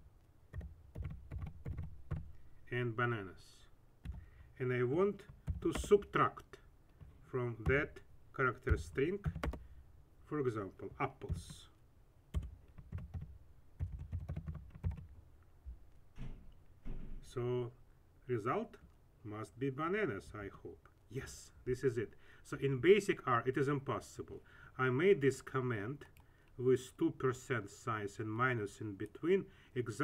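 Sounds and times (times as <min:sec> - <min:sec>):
computer keyboard typing: 0:00.5 - 0:02.3, 0:04.0 - 0:04.3, 0:08.7 - 0:09.6, 0:11.3 - 0:11.6, 0:12.3 - 0:15.1.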